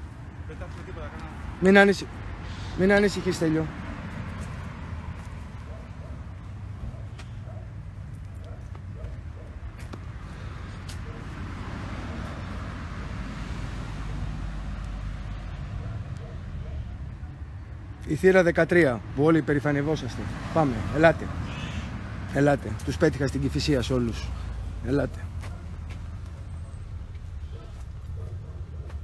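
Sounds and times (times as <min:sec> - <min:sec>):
distant traffic rumble: 0:00.0 - 0:29.0.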